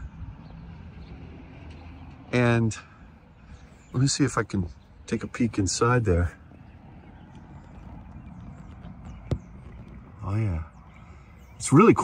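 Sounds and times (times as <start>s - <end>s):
faint low outdoor rumble: 0.0s - 12.0s.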